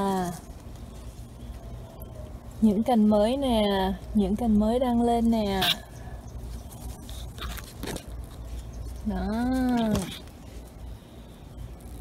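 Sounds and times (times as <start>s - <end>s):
leaves rustling against microphone: 0.0s - 12.0s.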